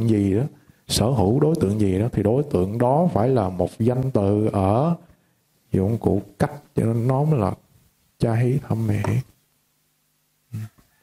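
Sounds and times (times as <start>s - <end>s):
man speaking: 0.0s - 5.0s, 5.7s - 7.6s, 8.2s - 9.3s.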